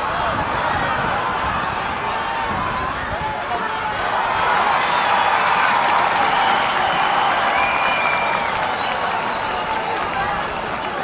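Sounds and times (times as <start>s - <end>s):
stadium crowd clapping: 0.0s - 11.0s
high whistle-like tone: 6.4s - 9.8s.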